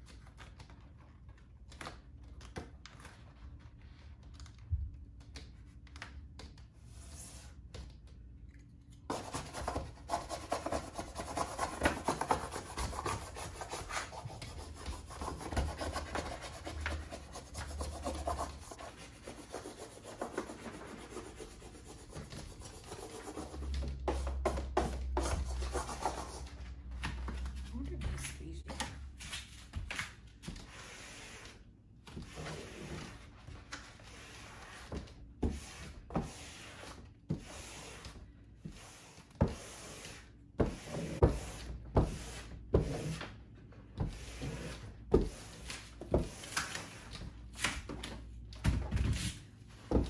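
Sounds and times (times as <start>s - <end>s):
scratchy rubbing and scraping: 9.1s - 23.8s.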